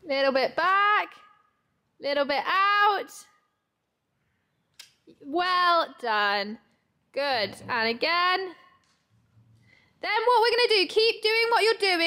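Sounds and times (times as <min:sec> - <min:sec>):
woman speaking: 0:00.0 - 0:01.2, 0:02.0 - 0:03.3, 0:05.2 - 0:08.6, 0:10.0 - 0:12.0.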